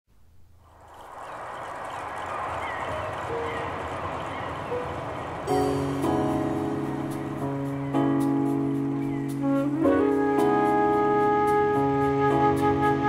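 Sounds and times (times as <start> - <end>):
noisy ambient music intro: 0.6 - 13.0
loud sustained chord: 2.8 - 13.0.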